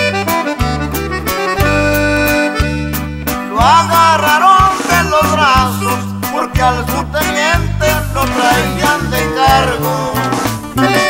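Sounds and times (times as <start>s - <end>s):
button accordion melody: 0.0s - 11.0s
steady bass line: 0.0s - 11.0s
strummed rhythm: 0.0s - 11.0s.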